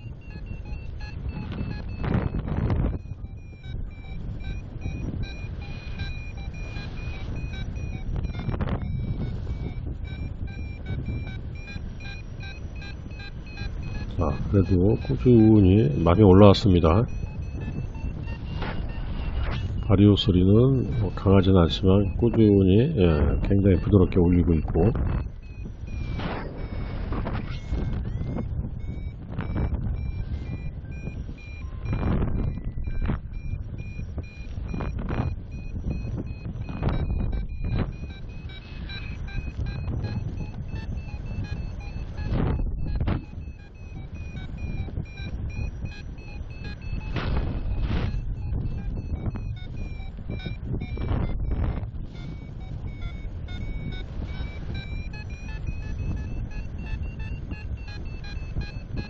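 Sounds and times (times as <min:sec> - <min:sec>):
variometer beeps: 0:00.0 - 0:59.0
wind rushing over microphone: 0:00.0 - 0:59.0.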